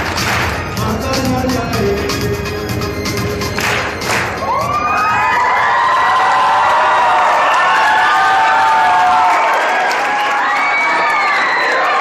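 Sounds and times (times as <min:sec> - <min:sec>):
people clapping: 0:00.0 - 0:00.8, 0:03.5 - 0:12.0
music with steady beat: 0:00.0 - 0:05.3
crowd cheering and screaming: 0:02.9 - 0:12.0.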